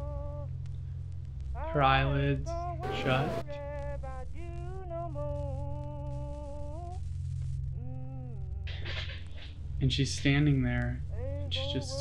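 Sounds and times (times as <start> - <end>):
steady low drone: 0.0 - 5.9
person humming: 2.8 - 3.7, 7.8 - 9.0, 11.1 - 12.0.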